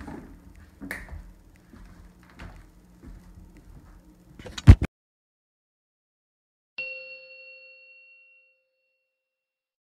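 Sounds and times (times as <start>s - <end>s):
bell-like chime ringing: 6.8s - 9.6s.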